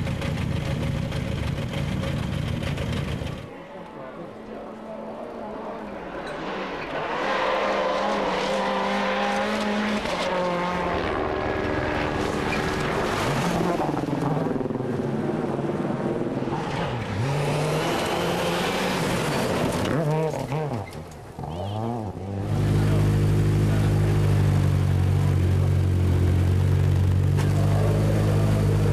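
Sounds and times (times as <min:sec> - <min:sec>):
rally car engine at full throttle: 0:00.0 - 0:28.9.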